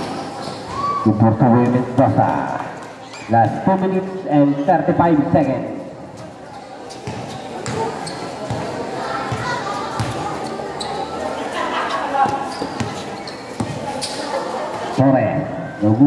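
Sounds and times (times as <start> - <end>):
crowd voices: 0.0 - 16.0
basketball bouncing on concrete: 7.0 - 10.3, 13.6 - 13.8.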